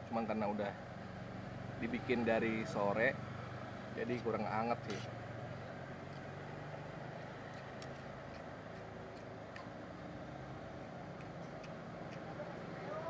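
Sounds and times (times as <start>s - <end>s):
roadside traffic drone: 0.0s - 13.0s.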